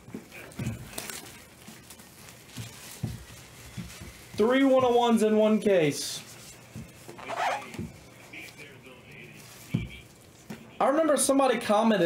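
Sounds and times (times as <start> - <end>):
plastic wrap crinkling: 0.0 - 10.5.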